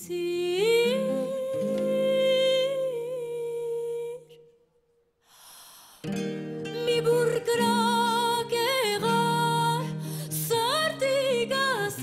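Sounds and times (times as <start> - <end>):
woman singing: 0.0 - 4.6, 6.6 - 12.0.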